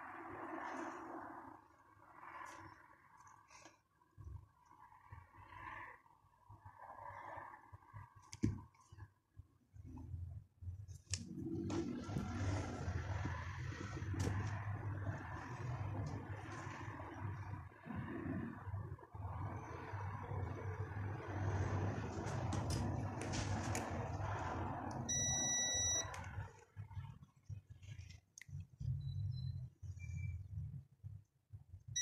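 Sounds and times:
low electronic hum: 6.6 - 32.0
fan noise: 11.0 - 27.0
electronic beep: 25.1 - 26.1, 28.9 - 30.5.

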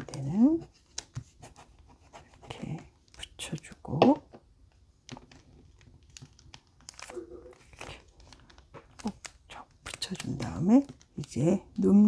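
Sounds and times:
paper rustling and crinkling: 5.0 - 11.9.

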